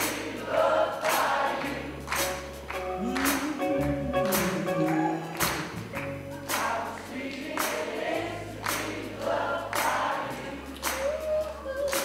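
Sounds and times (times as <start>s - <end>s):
bass and drums: 0.0s - 12.0s
crowd singing along: 0.0s - 12.0s.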